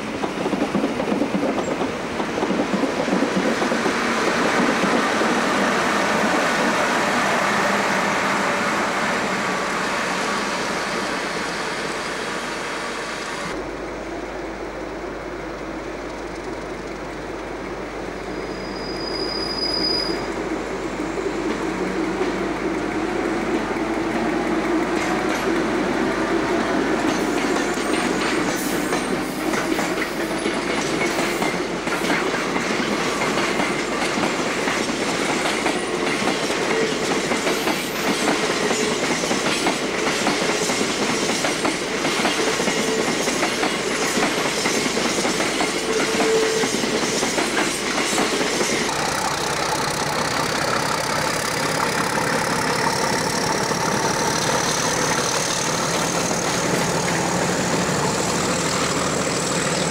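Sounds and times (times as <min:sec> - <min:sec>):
freight train passing: 0:00.0 - 0:59.9
wheels clacking over rail joints: 0:26.5 - 0:59.9
diesel locomotive engine running: 0:47.4 - 0:59.9.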